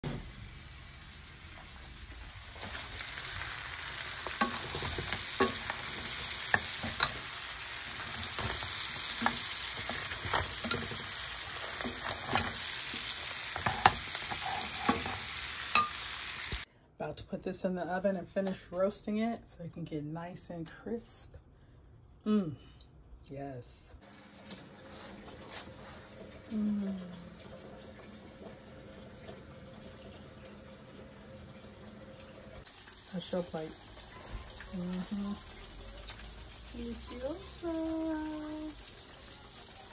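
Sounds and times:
crab legs sizzling in a skillet: 0:00.0 - 0:16.7, 0:32.6 - 0:39.9
wooden spoon stirring: 0:04.0 - 0:15.9.

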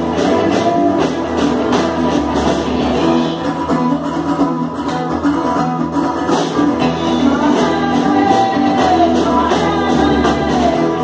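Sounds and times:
drum kit: 0:00.0 - 0:11.0
electric guitars: 0:00.0 - 0:11.0
strummed acoustic guitar: 0:00.0 - 0:11.0.

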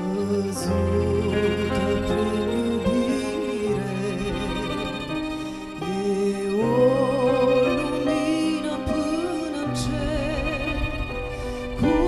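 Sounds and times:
instrumental accompaniment: 0:00.0 - 0:12.0
woman singing a hymn: 0:00.0 - 0:12.0.

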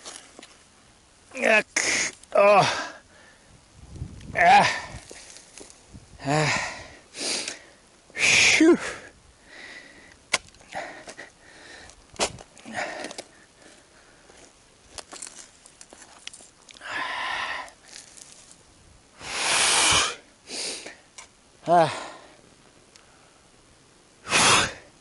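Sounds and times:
man grunting: 0:01.4 - 0:03.0, 0:04.3 - 0:05.0, 0:06.2 - 0:06.8, 0:21.6 - 0:22.3
man breathing hard: 0:01.8 - 0:03.6, 0:06.2 - 0:12.0, 0:12.6 - 0:14.4, 0:16.8 - 0:17.8, 0:21.8 - 0:22.4.

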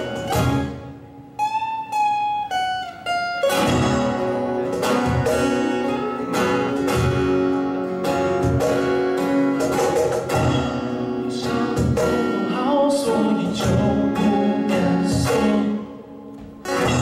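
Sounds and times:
acoustic guitars playing: 0:00.0 - 0:17.0
cajon beat: 0:00.0 - 0:17.0.

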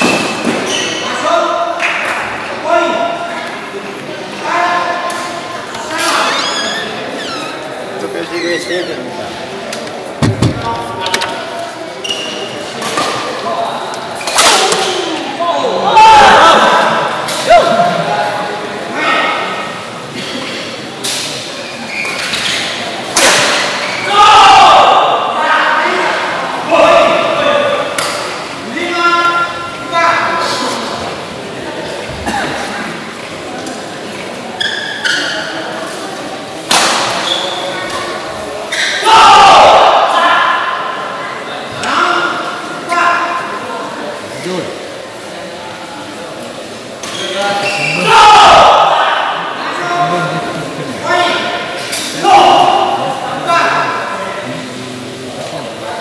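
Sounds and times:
players shouting: 0:47.8 - 0:50.2.

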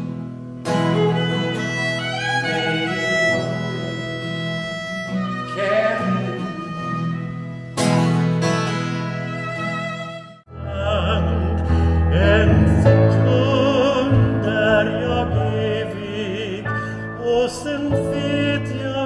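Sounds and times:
acoustic guitar strummed chords: 0:00.0 - 0:19.0
violin playing: 0:00.7 - 0:10.5.

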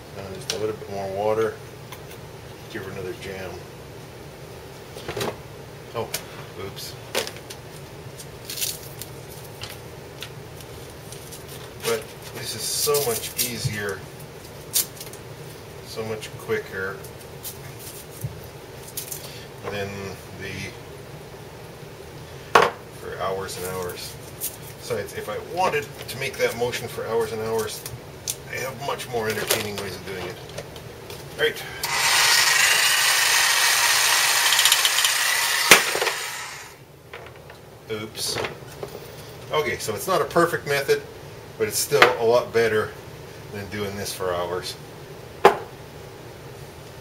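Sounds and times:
reciprocating saw rattling paint bottle: 0:31.9 - 0:36.7.

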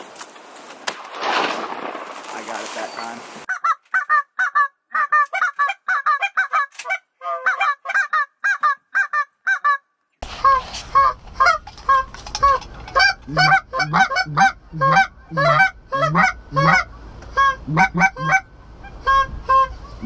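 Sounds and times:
geese honking: 0:03.5 - 0:20.0
hand-blown goose call: 0:10.4 - 0:20.0.

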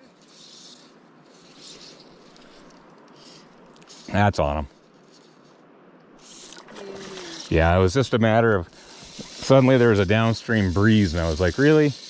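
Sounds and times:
shallow stream running: 0:00.0 - 0:12.0.

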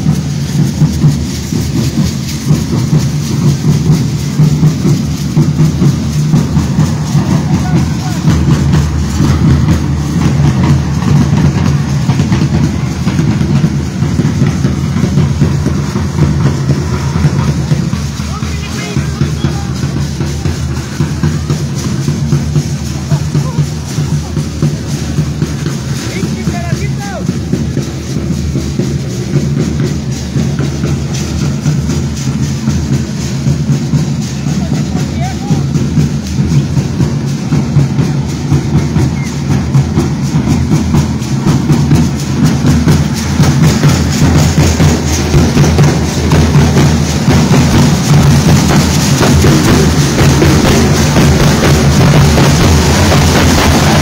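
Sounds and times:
drum band playing dance rhythm: 0:00.0 - 0:54.0.

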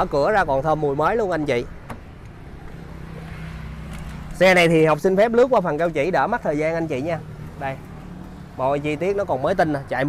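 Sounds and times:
hum of vehicles: 0:00.0 - 0:10.0.

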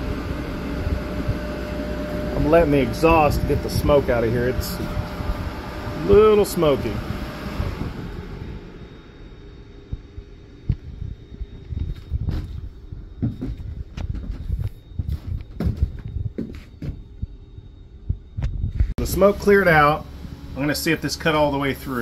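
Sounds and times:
exhaust blower humming: 0:00.0 - 0:22.0
low thumps and knocks: 0:10.0 - 0:19.0.

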